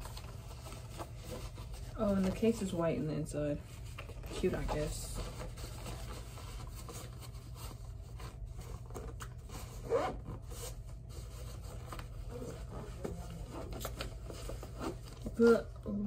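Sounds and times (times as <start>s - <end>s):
case and headphones rubbing: 4.1s - 15.3s
zipper on carrying case: 9.8s - 10.4s.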